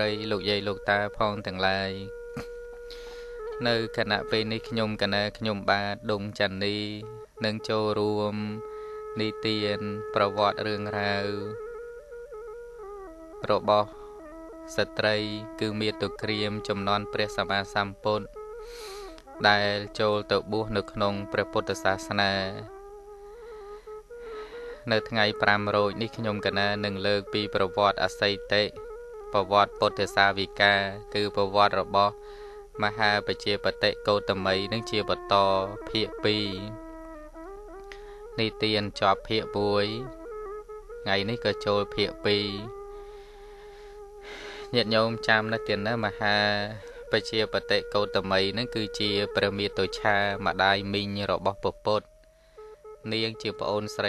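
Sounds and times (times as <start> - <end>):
man speaking: 0.0 - 2.5, 3.6 - 8.6, 9.2 - 11.6, 13.4 - 13.9, 14.7 - 18.3, 19.4 - 22.7, 24.8 - 28.8, 29.4 - 32.2, 32.8 - 36.8, 38.4 - 40.1, 41.1 - 42.7, 44.6 - 52.1, 53.0 - 54.0
faint steady tone: 0.0 - 54.0
soft sustained melody: 0.0 - 54.0.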